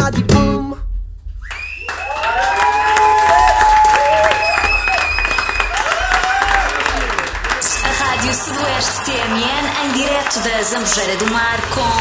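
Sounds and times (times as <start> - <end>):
group clapping and cheering: 1.4 - 12.0
song: 7.4 - 12.0
radio jingle: 7.6 - 12.0.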